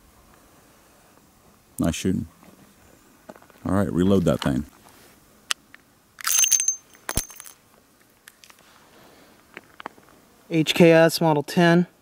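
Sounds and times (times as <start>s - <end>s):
brass cases clattering and ringing: 6.2s - 7.6s.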